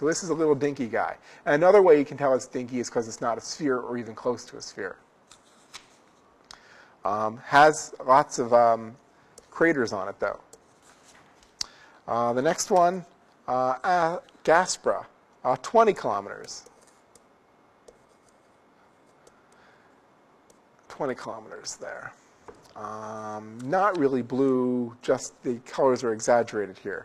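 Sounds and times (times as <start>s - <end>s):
faint steady hiss: 0.0s - 27.0s.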